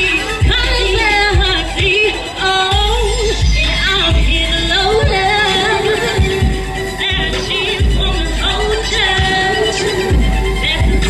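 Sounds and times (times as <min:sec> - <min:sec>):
backing track: 0:00.0 - 0:11.0
woman singing into microphone: 0:00.0 - 0:11.0
deep bass hits: 0:02.7 - 0:11.0.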